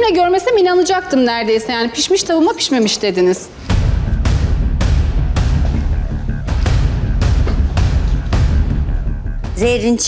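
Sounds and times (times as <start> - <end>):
tense dramatic music: 3.5 - 10.0
deep drum hits: 3.7 - 9.8.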